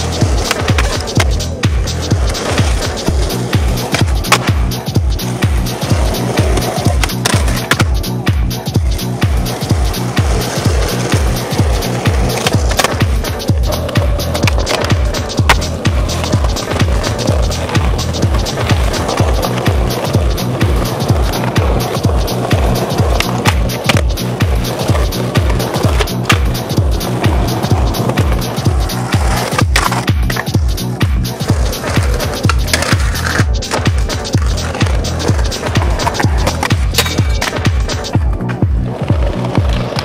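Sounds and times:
music with heavy bass beat: 0:00.0 - 0:40.0
skateboard clacks: 0:00.0 - 0:40.0
skateboard wheels rolling on concrete: 0:00.0 - 0:40.0.

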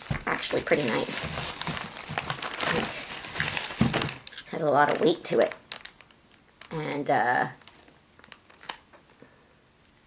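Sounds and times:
plastic bag crinkling: 0:00.0 - 0:08.9.

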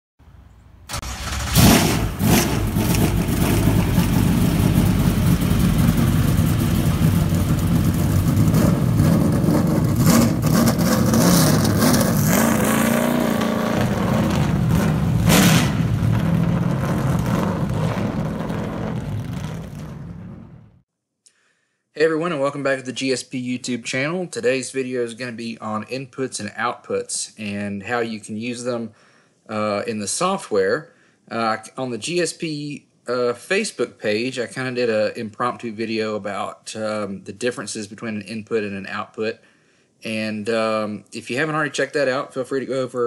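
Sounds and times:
car engine starting and revving: 0:00.9 - 0:20.8.

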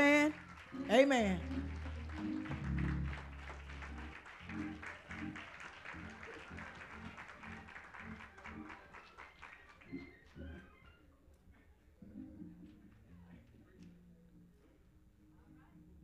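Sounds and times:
live band music: 0:00.0 - 0:05.4
low bass notes: 0:01.3 - 0:04.7.

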